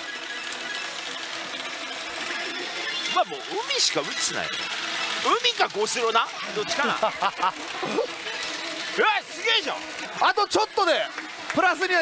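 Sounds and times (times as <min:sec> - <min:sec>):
clatter of steel balls: 0:00.0 - 0:12.0
electronic machine music and effects: 0:00.0 - 0:12.0.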